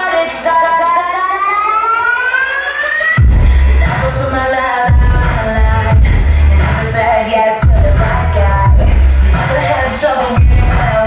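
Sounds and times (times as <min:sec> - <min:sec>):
rising electronic siren tone: 0:01.1 - 0:03.3.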